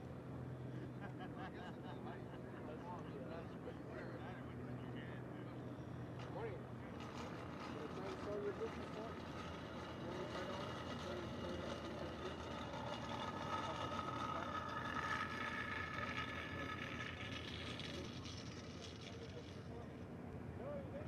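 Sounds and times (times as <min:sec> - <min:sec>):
steady mechanical hum: 0:00.0 - 0:21.0.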